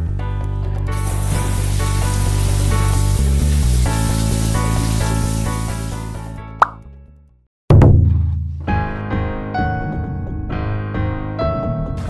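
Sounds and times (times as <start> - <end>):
background music: 0.0 - 7.3, 8.5 - 12.0.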